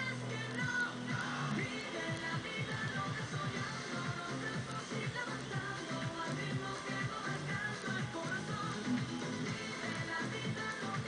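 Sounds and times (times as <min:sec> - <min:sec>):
dance music from radio: 0:00.0 - 0:11.0.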